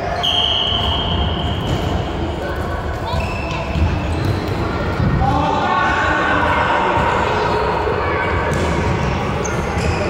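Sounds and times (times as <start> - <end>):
footballs kicked and bouncing: 0.8 - 5.3, 8.4 - 9.1.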